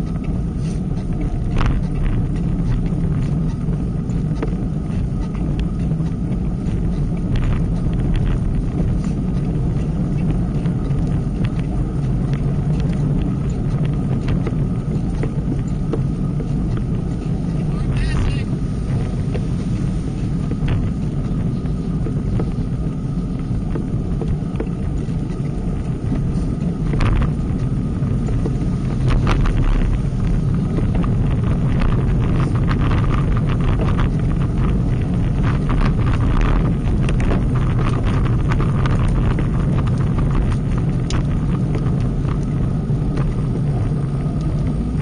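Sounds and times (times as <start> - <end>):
road and tyre rumble: 0.0 - 45.0
wind on microphone: 0.0 - 45.0.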